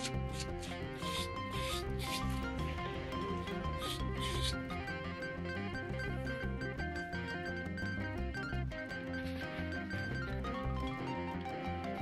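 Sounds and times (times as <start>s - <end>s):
hand tool scratching leather: 0.0s - 2.5s, 3.8s - 4.6s
background music: 0.0s - 12.0s.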